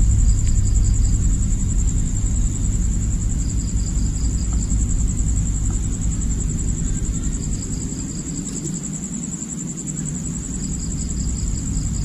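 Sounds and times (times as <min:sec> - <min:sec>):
continuous low rumble: 0:00.0 - 0:12.0
crickets chirping: 0:00.0 - 0:12.0.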